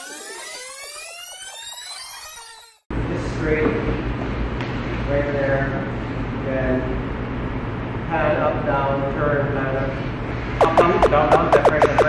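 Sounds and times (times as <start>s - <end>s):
rising electronic sweep: 10.6s - 12.0s.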